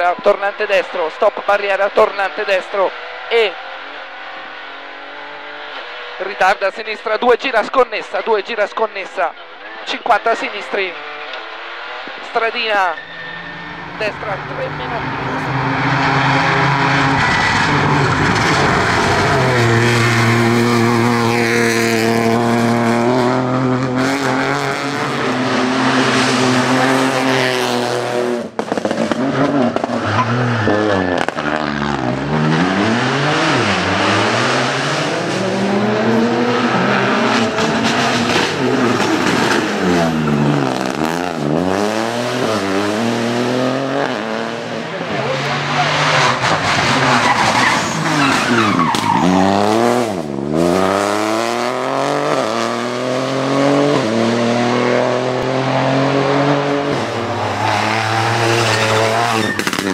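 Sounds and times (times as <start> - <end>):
rally car engine revving: 0.0 - 59.9.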